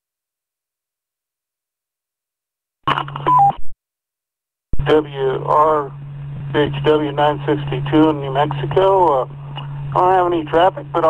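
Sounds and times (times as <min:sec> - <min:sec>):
radio beep tones: 0:02.9 - 0:03.7
man speaking over radio: 0:04.8 - 0:11.0
steady radio hum: 0:04.8 - 0:11.0.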